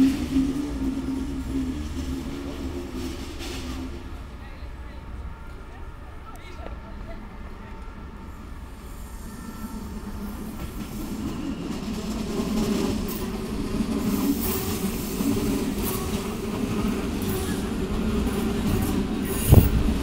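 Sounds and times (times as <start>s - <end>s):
train rail rumble: 0.0s - 20.0s.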